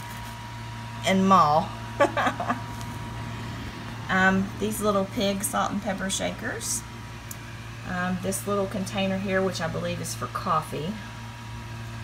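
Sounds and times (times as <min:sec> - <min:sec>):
steady low hum: 0:00.0 - 0:12.0
woman laughing: 0:02.0 - 0:02.8.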